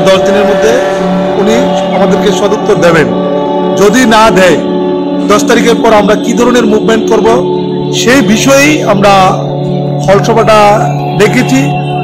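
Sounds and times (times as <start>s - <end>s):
man speaking: 0.0s - 11.8s
steady droning tone: 0.0s - 12.0s.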